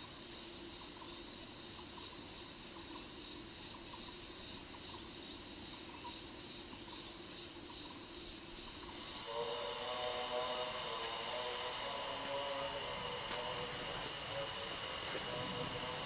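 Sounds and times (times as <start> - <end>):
high-pitched insect drone: 0.0 - 16.0
pulsing insect chirr: 0.0 - 16.0
low steady hum: 7.6 - 16.0.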